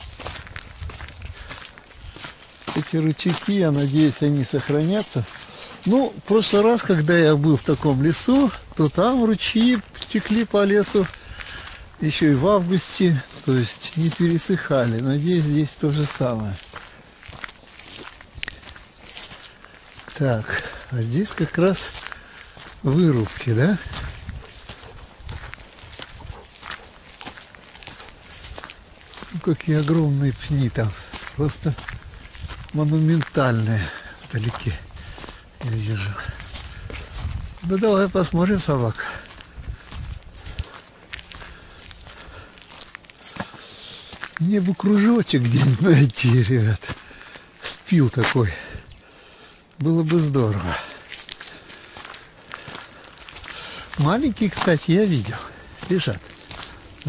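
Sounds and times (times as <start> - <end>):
footsteps on gravel: 0.0 - 57.0.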